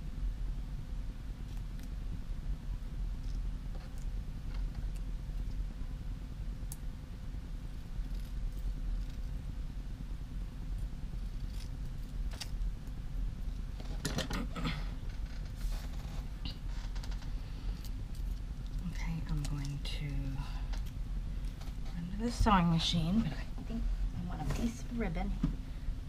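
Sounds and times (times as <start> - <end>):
low background hum: 0.0 - 26.0
rustling and clicking: 15.0 - 19.8.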